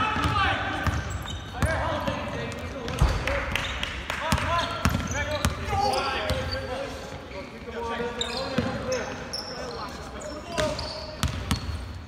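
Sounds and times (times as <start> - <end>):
sneakers squeaking: 0.1 - 12.0.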